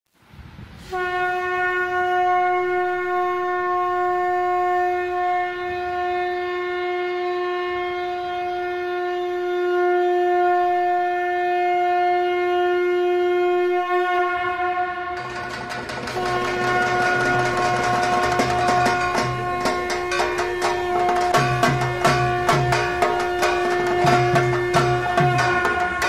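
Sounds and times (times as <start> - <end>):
conch shell blown in long note: 0.8 - 26.0.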